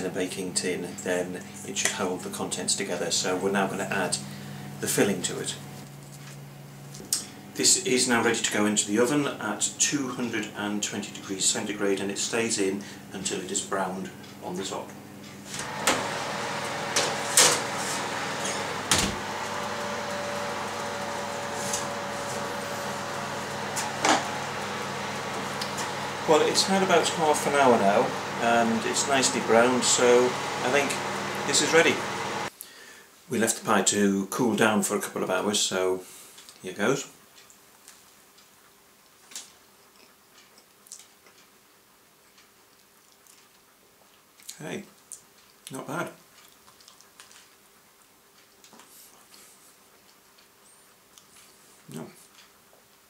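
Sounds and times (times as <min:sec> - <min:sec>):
steady whirr: 0:15.3 - 0:32.5
oven door opening and shutting: 0:15.5 - 0:32.4
man chewing food: 0:37.4 - 0:53.0.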